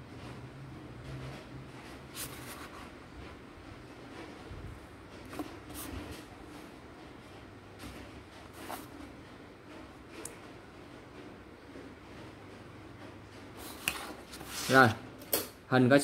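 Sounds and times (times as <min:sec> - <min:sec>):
ruler scraping and tapping on paper: 0:13.6 - 0:15.5.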